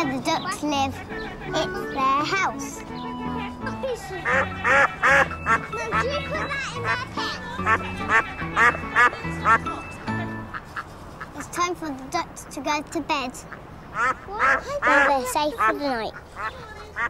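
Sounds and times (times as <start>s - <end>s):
soft background music: 0.0s - 10.8s
ducks quacking: 0.1s - 11.6s, 13.4s - 17.0s.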